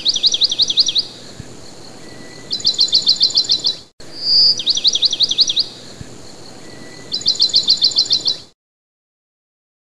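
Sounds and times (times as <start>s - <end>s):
songbird chirping: 0.0s - 8.6s.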